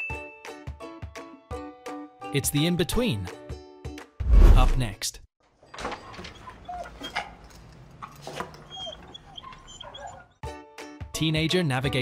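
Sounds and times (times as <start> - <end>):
dog whimpering and yipping: 6.0 - 7.5, 8.3 - 10.4
faint background music: 11.0 - 12.0.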